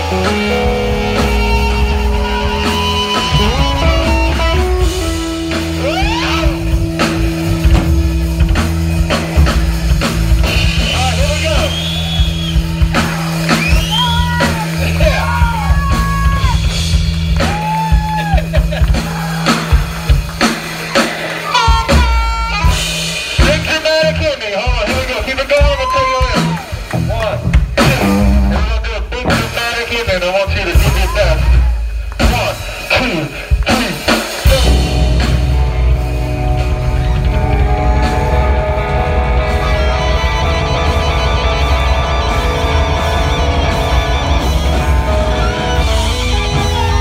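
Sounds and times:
bending high guitar notes: 0:00.0 - 0:08.6, 0:34.5 - 0:47.0
live rock band playing: 0:00.0 - 0:47.0.

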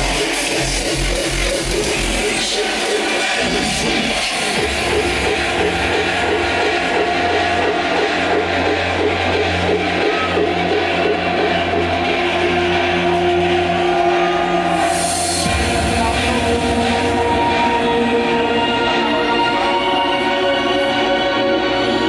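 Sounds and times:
loud hardcore electronic music: 0:00.0 - 0:22.0.

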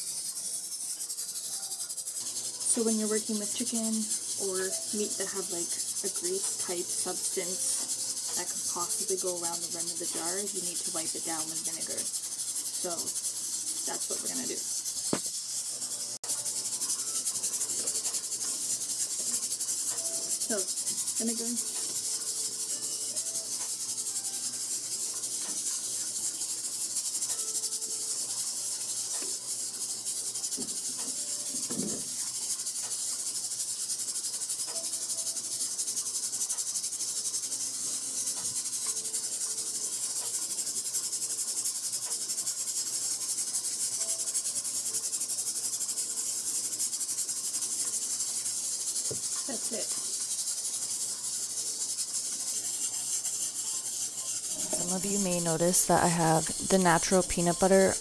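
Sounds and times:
pressure canner hissing: 0:00.0 - 0:58.0.

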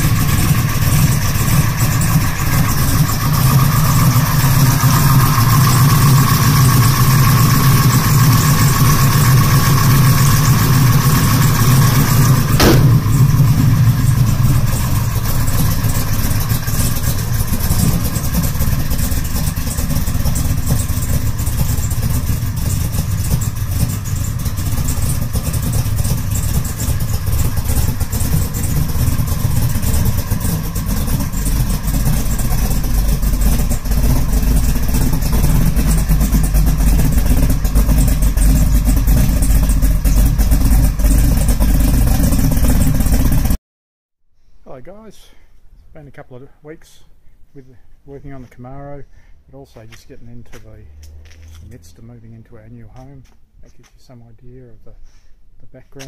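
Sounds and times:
engine idling with deep rumble: 0:00.0 - 0:43.6, 0:47.7 - 0:53.8.

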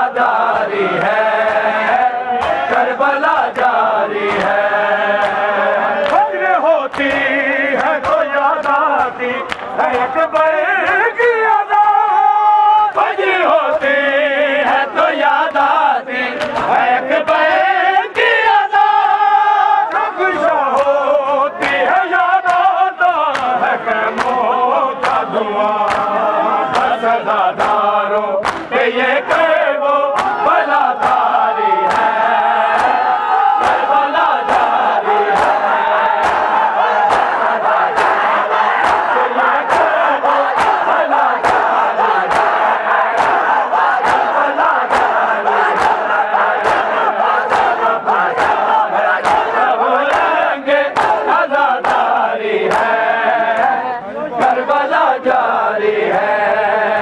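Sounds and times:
men chanting a lament: 0:00.0 - 0:57.0
hands slapping bare chests: 0:00.5 - 0:04.6, 0:05.2 - 0:11.0, 0:16.4 - 0:17.4, 0:20.7 - 0:21.0, 0:21.6 - 0:24.4, 0:25.0 - 0:27.0, 0:27.6 - 0:27.8, 0:28.4 - 0:28.7, 0:30.1 - 0:52.9.

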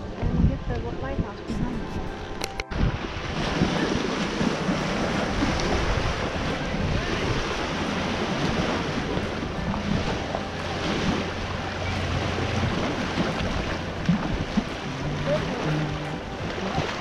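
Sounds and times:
wind buffeting microphone: 0:00.0 - 0:17.0
waves lapping on rocks: 0:00.1 - 0:17.0.

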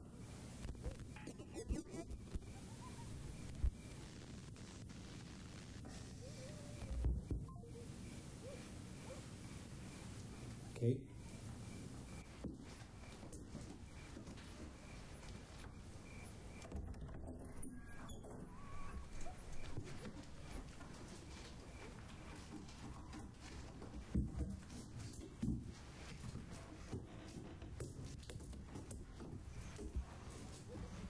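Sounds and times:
rustling of movement: 0:05.0 - 0:31.0.

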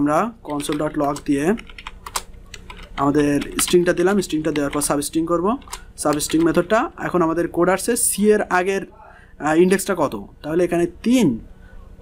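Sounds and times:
man talking: 0:00.0 - 0:01.7, 0:03.0 - 0:11.5
keyboard typing: 0:00.4 - 0:06.9.

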